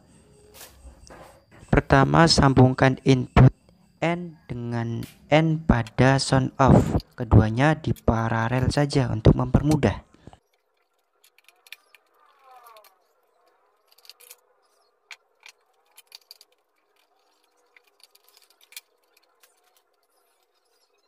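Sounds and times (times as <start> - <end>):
electrical wires clicking and rubbing: 6.7 - 21.0.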